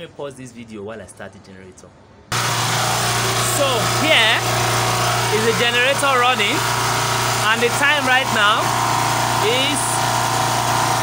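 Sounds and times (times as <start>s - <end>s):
portable generator humming: 2.3s - 11.0s.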